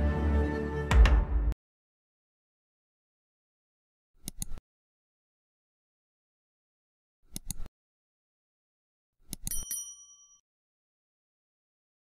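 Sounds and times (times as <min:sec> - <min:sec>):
high bell ding: 0:09.5 - 0:10.4.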